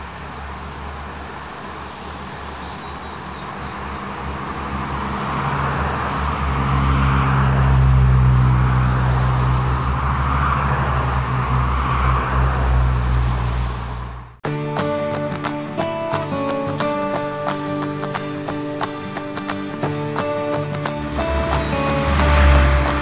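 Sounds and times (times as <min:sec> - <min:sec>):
tyres hissing on road: 0:00.0 - 0:14.0, 0:20.8 - 0:23.0
car engines humming: 0:00.0 - 0:14.4, 0:18.3 - 0:23.0.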